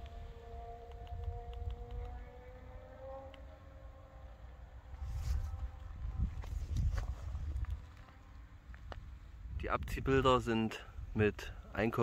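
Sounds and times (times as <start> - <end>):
rustle: 0.0 - 9.5
wind rumble on microphone: 0.0 - 12.0.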